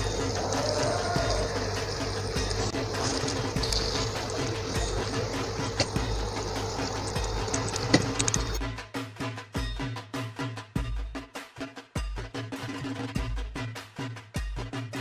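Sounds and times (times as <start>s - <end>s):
chicken sizzling in a pan: 0.0s - 8.6s
steady low hum: 0.0s - 8.6s
clicks: 1.6s - 8.6s
upbeat percussive music: 10.6s - 15.0s.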